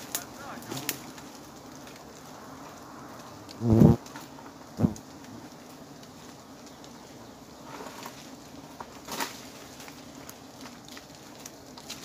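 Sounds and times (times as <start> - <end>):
bee colony humming: 0.0 - 12.0.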